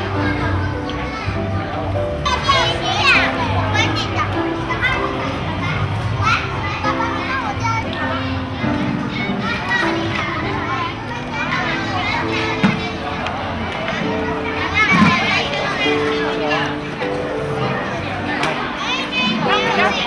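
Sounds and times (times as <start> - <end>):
background music: 0.0 - 20.0
children chattering and calling: 0.0 - 20.0.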